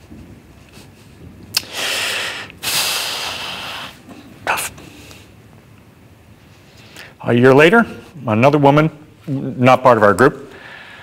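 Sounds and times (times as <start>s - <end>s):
man breathing heavily: 1.5s - 5.4s, 10.5s - 11.0s.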